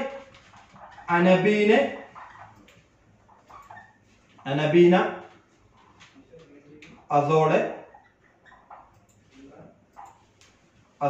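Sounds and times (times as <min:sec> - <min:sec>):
marker squeaking on whiteboard: 0:00.0 - 0:10.8.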